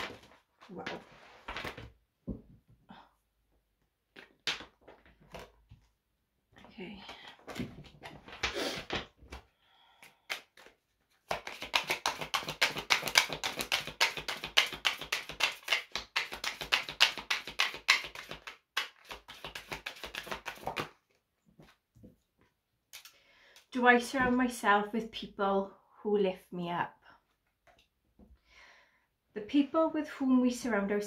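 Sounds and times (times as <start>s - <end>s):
cards shuffled by hand: 10.0s - 21.2s.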